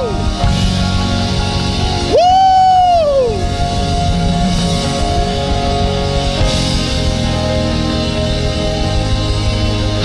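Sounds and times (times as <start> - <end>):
held keyboard chords: 0.0 - 10.0.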